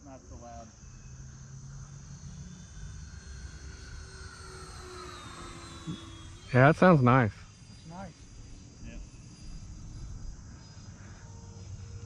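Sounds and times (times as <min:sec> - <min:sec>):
crickets chirping: 0:00.0 - 0:12.0
electric jet fans whining: 0:00.0 - 0:12.0.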